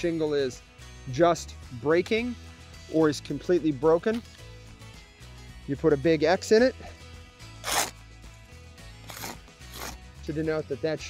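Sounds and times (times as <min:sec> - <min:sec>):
chalk scraping on shingle: 0:07.6 - 0:08.0, 0:09.1 - 0:10.0.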